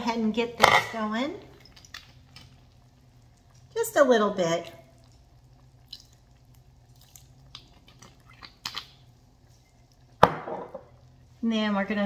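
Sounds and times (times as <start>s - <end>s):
liquid dripping: 1.5s - 11.3s.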